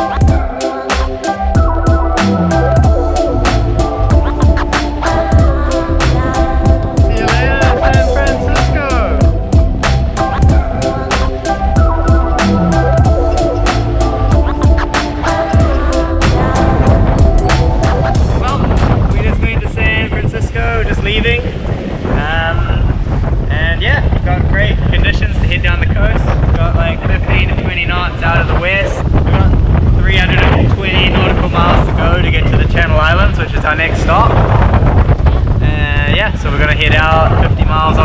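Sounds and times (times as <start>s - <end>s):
wind buffeting microphone: 0.0s - 38.0s
voices talking: 1.9s - 20.2s.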